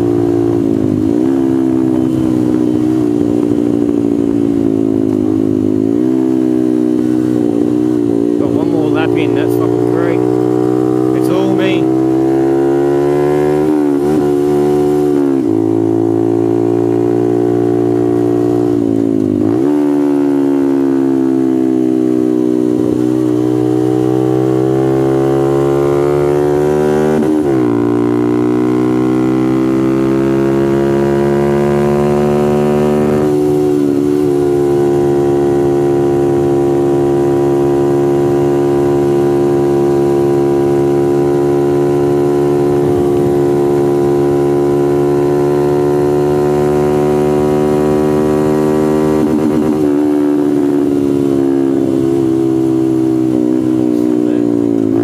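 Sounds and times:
motorcycle engine at high revs: 0:00.0 - 0:55.0.

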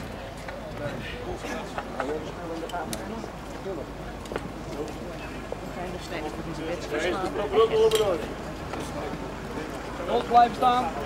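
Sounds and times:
crowd talking outdoors: 0:00.0 - 0:11.0.

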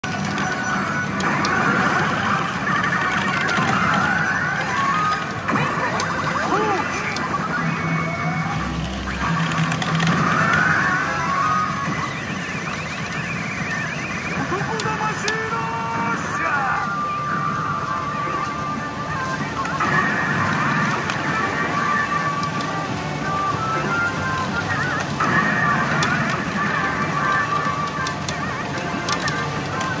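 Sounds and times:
electronic game music: 0:00.0 - 0:30.0
game sound effects: 0:00.0 - 0:30.0
machine voice lines: 0:00.0 - 0:30.0.

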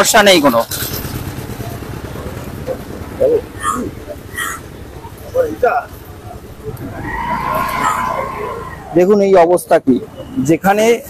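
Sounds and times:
motorcycle engine running: 0:00.0 - 0:07.0
street traffic rumble: 0:00.0 - 0:11.0
faint voices: 0:01.3 - 0:10.7.

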